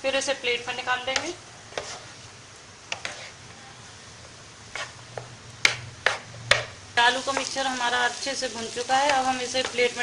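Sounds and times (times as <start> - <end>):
spatula scraping frying pan: 1.1 - 3.4, 4.6 - 6.4.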